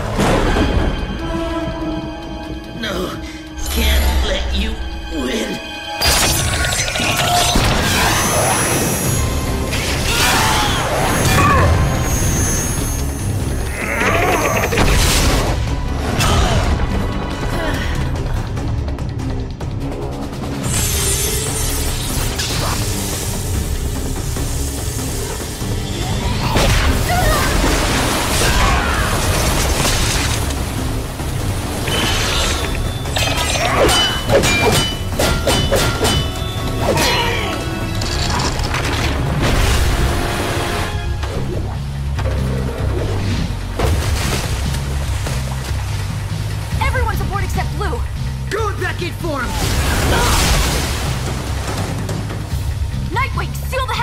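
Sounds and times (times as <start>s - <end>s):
dramatic music: 0.0s - 54.0s.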